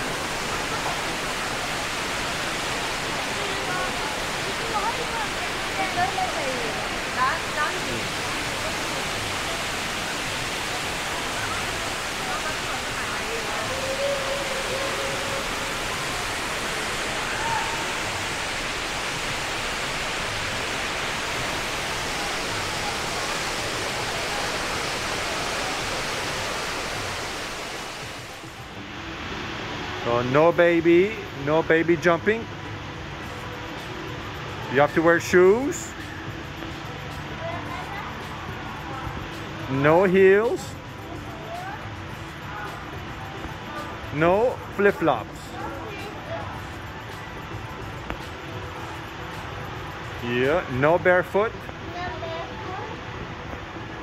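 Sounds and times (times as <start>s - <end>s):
faint voices: 0.0s - 18.8s
waterfall rushing into pool: 0.0s - 54.0s.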